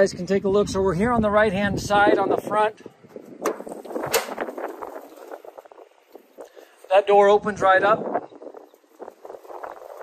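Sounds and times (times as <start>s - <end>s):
metal door rattling open: 3.4s - 4.6s.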